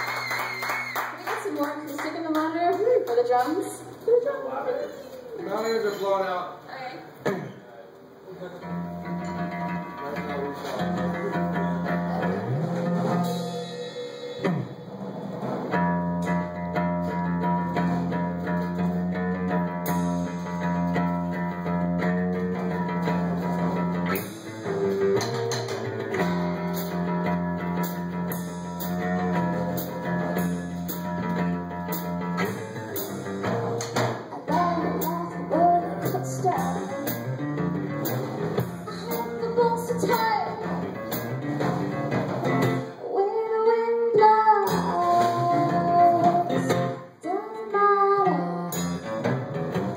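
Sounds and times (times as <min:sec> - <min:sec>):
acoustic guitar playing: 0:08.1 - 0:43.2, 0:43.8 - 0:49.9
drum kit with cymbal strikes: 0:10.4 - 0:43.0, 0:44.7 - 0:47.1, 0:48.7 - 0:49.9
woman singing: 0:34.5 - 0:37.2, 0:38.9 - 0:40.7, 0:43.0 - 0:48.8.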